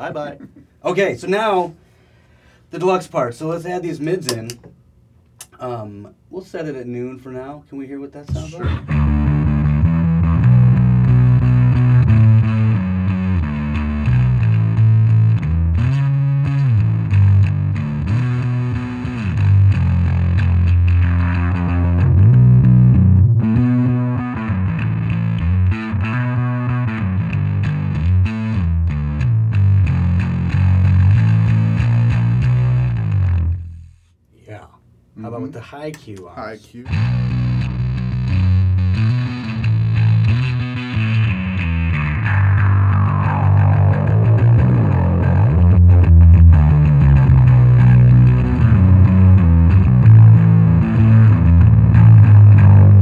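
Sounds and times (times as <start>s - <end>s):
distorted bass guitar riff: 8.3s - 34.1s, 36.9s - 53.0s.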